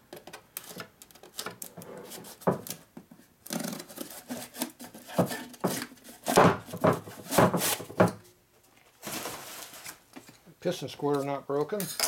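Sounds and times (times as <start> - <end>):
knife slitting cardboard box: 3.6 - 8.0
cardboard scraping and rustling: 8.9 - 10.0.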